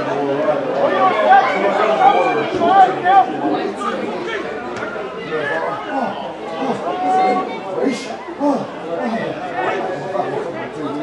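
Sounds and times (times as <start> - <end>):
people chattering and calling out: 0.0 - 11.0.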